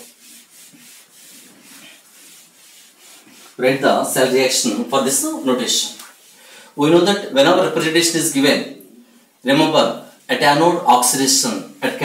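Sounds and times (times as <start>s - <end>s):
duster wiping whiteboard: 0.0s - 7.2s.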